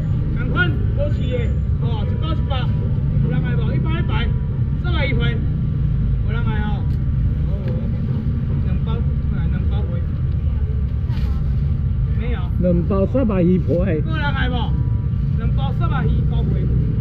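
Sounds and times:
low engine rumble: 0:00.0 - 0:17.0.

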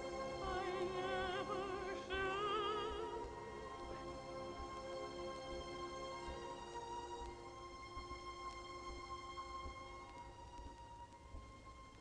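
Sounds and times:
orchestra playing soft held chords: 0:00.0 - 0:12.0.

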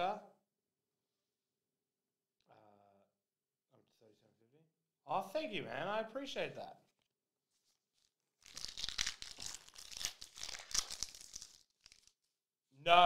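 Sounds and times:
plastic card sleeve crinkling: 0:07.7 - 0:12.3.

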